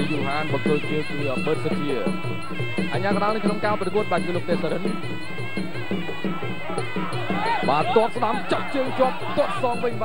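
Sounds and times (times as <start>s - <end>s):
reedy wind instrument melody: 0.0s - 10.0s
traditional music ensemble: 0.0s - 10.0s.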